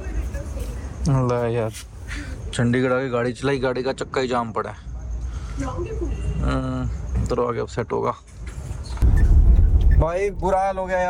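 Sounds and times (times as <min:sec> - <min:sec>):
vehicle engine rumble and road noise: 0:08.3 - 0:11.0.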